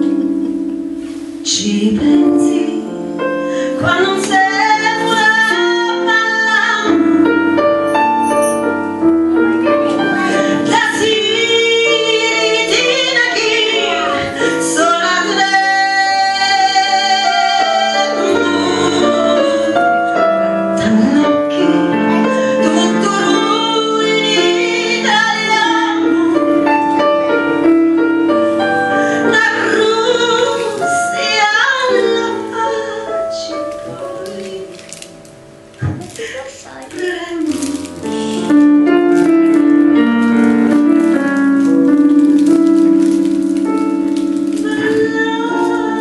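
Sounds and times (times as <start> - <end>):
keyboard: 0.0 - 46.0
woman singing with vibrato: 1.4 - 7.2, 10.2 - 19.9, 20.7 - 26.8, 29.2 - 34.9, 36.1 - 38.6, 44.0 - 46.0.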